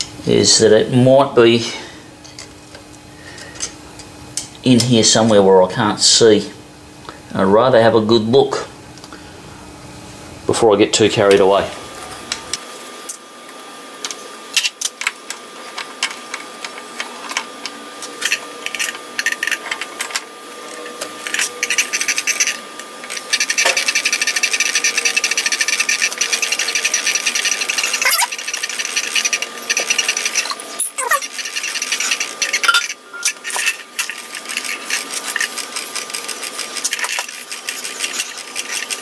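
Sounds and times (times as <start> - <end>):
gears meshing: 14.5 - 39.0.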